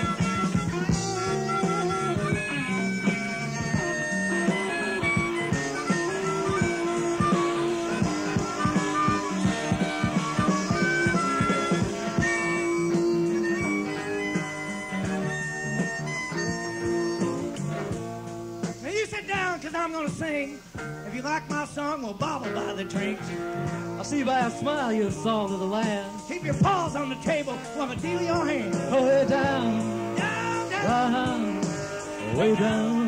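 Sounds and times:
lead melody notes: 0.0s - 18.9s, 22.4s - 33.0s
bass: 0.0s - 33.0s.

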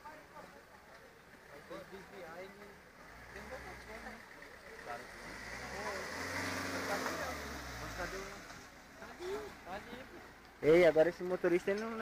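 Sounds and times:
van engine hum: 0.0s - 12.0s
tyres hissing on wet road: 5.1s - 8.9s.

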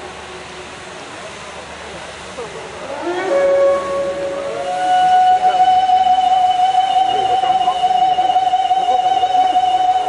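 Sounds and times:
steady hiss: 0.0s - 10.0s
gliding swell: 2.5s - 10.0s.

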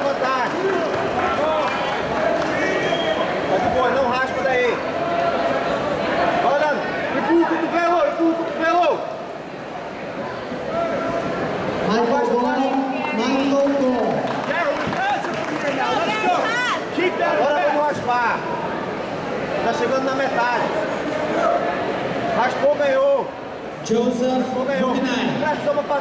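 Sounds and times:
crowd murmur in a hall: 0.0s - 26.0s.

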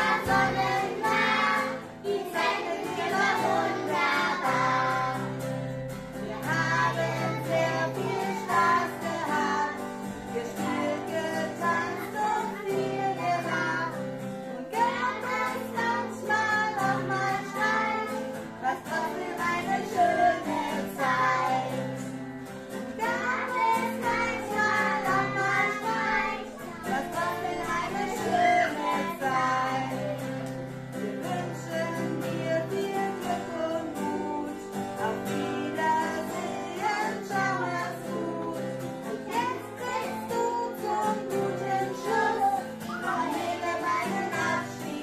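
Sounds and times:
woman singing: 0.0s - 5.4s, 6.2s - 22.1s, 23.0s - 45.0s
acoustic guitar: 0.0s - 45.0s.

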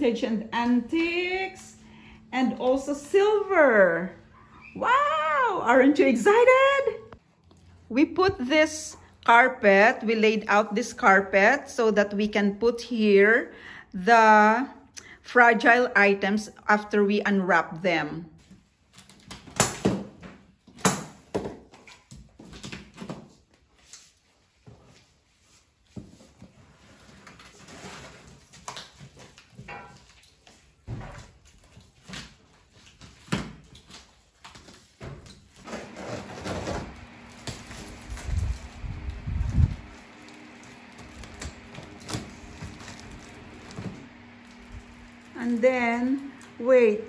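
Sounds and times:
tape tearing: 27.0s - 46.5s.

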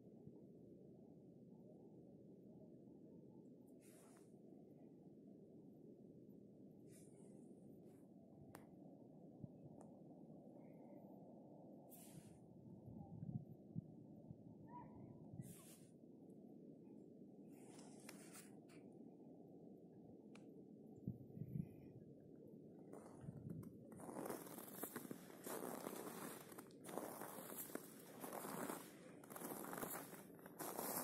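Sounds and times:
faint low outdoor rumble: 0.0s - 31.0s
soft rustles: 17.6s - 18.8s, 23.0s - 31.0s.

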